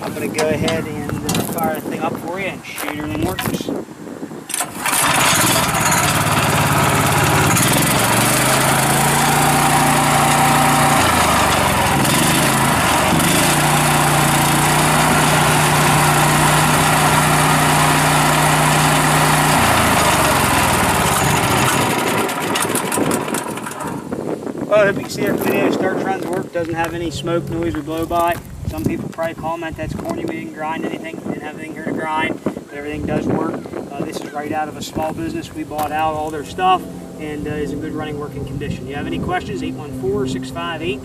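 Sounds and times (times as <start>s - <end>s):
stump grinder engine running: 4.5s - 24.2s.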